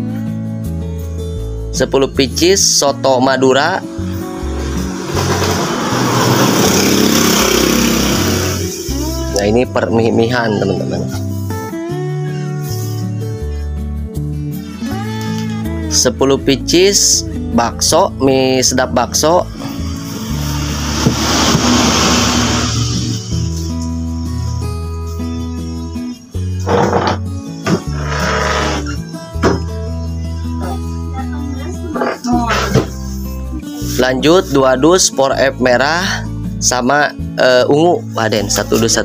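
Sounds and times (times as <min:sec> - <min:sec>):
acoustic guitar music: 0:00.0 - 0:39.0
vehicle passing by: 0:04.6 - 0:08.8.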